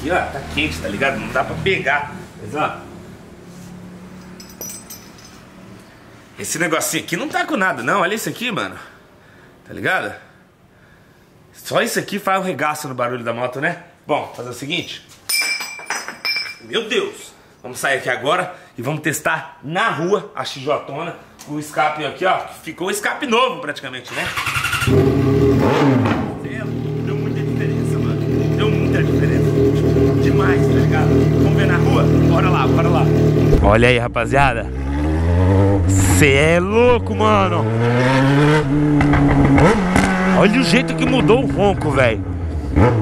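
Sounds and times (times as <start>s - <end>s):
metallic clinking: 4.2s - 5.6s, 15.3s - 16.7s
motorcycle engine starting and idling: 24.1s - 33.8s.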